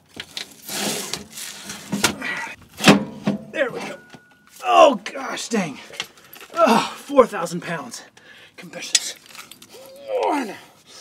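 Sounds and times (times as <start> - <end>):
loud metal clunk: 2.8 - 4.3.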